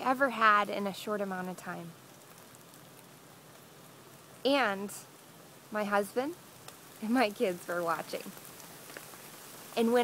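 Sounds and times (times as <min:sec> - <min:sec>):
light rain falling: 0:00.0 - 0:10.0.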